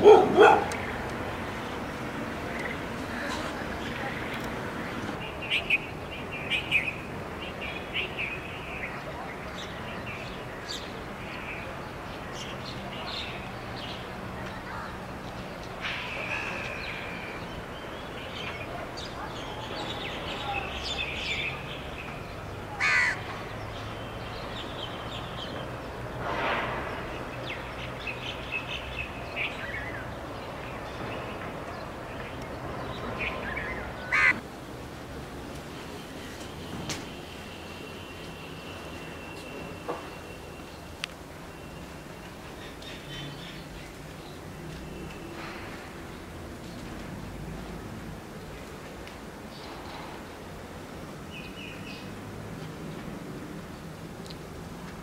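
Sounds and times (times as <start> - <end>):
dog barking: 0.0 - 0.8
loud bird call: 22.8 - 23.3, 33.2 - 34.4.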